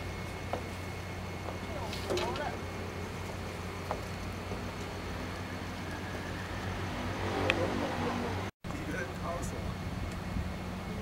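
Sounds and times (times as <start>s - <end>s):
steady low hum: 0.0s - 11.0s
distant voices chatting: 0.4s - 9.8s.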